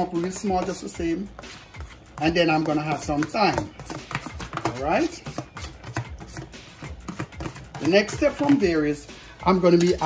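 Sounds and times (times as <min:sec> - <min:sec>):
faint music: 0:00.0 - 0:10.0
kitchen tongs clicking and scraping: 0:09.7 - 0:10.0.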